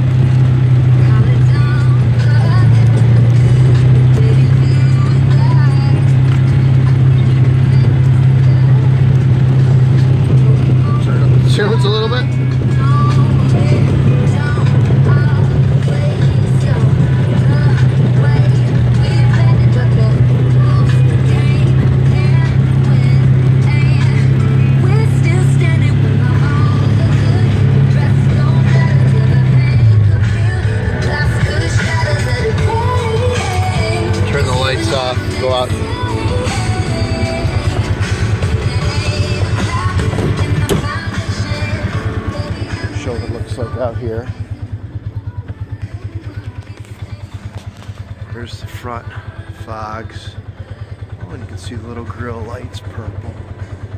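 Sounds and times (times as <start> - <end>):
music with singing from stereo: 0.0 - 53.9
vehicle engine droning: 0.0 - 53.9.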